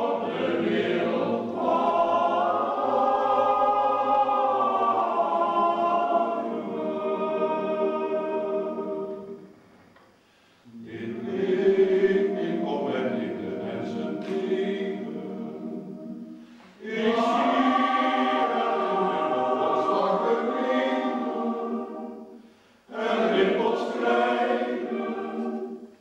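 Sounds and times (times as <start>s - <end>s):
male voice choir singing: 0.0s - 9.4s, 10.7s - 25.9s.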